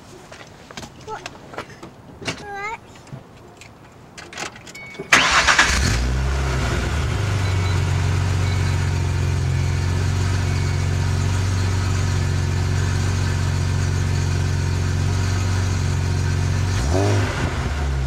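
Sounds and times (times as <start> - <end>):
car engine starting and idling: 5.0 - 18.0.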